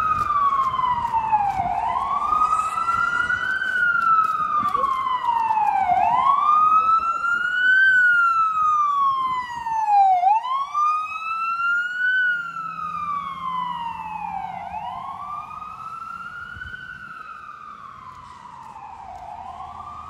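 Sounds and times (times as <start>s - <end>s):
ambulance siren wailing: 0.0s - 20.0s.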